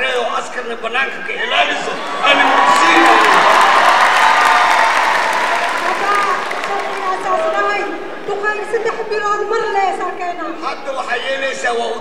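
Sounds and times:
cheering: 1.4s - 9.0s
audience applause: 1.8s - 9.0s.

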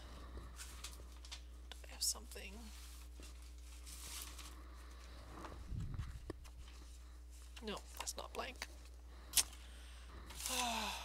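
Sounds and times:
steady low hum: 0.0s - 11.0s
soft rustle: 2.2s - 8.0s.

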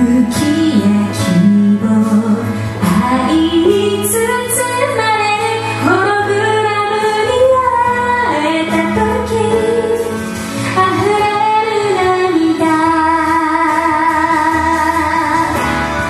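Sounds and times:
electric keyboard: 0.0s - 16.0s
woman singing: 0.0s - 16.0s.

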